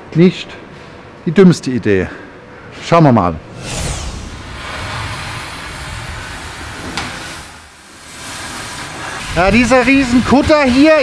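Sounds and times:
rushing noise of metalwork: 3.5 - 11.0.

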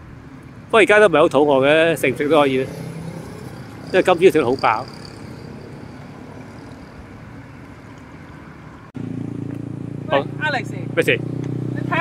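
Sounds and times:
passing cars hum: 0.0 - 12.0.

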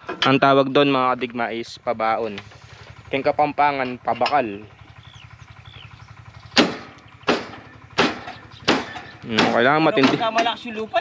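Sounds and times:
diesel engine idling: 0.0 - 11.0
sharp knocks: 6.5 - 10.6.

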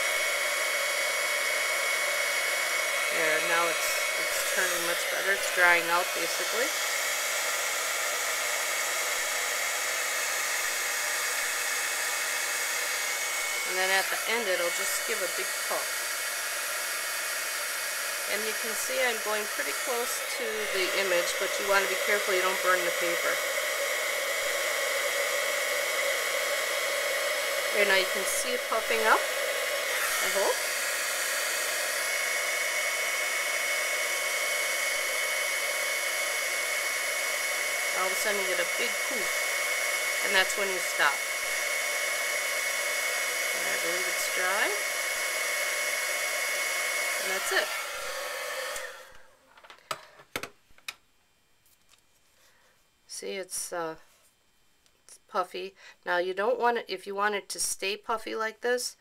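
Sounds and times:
heat tool blowing air: 0.0 - 49.4.

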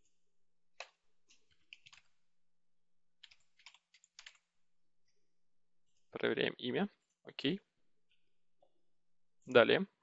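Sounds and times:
typing on computer keyboard: 0.8 - 2.2, 3.2 - 4.5.

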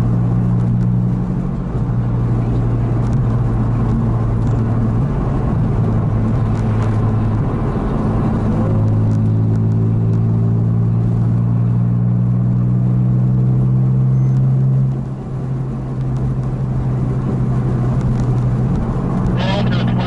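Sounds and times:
car engine droning: 0.0 - 20.0
tyre and road noise: 0.0 - 20.0.

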